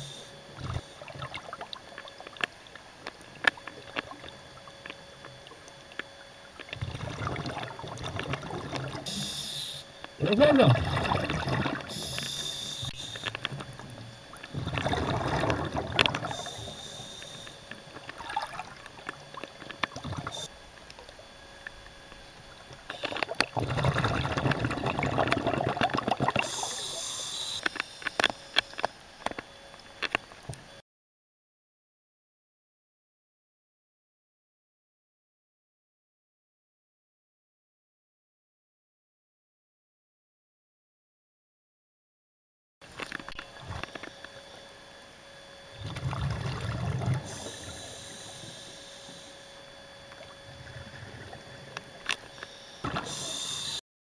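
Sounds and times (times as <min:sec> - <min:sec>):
faint steady hum: 0:00.0 - 0:30.8, 0:42.8 - 0:53.8
water crackling and bubbling: 0:00.1 - 0:30.6, 0:42.8 - 0:53.8
sharp clicks underwater: 0:00.2 - 0:30.6, 0:42.8 - 0:44.8, 0:50.1 - 0:53.8
steady hiss: 0:09.1 - 0:10.0, 0:11.9 - 0:13.5, 0:16.2 - 0:17.8, 0:26.4 - 0:28.6, 0:52.9 - 0:53.8.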